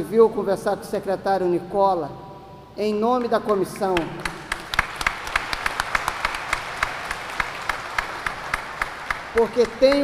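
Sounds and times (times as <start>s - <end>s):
small audience clapping: 3.5s - 10.0s.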